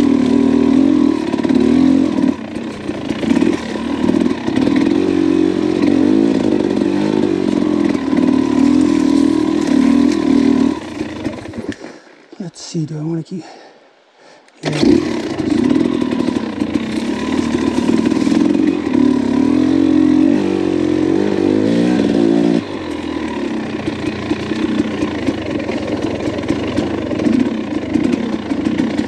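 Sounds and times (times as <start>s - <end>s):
dirt bike engine revving: 0.0s - 12.0s, 14.6s - 29.0s.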